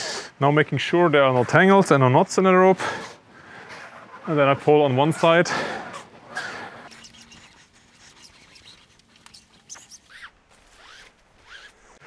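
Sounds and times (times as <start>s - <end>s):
rope sliding through hands: 5.9s - 12.0s.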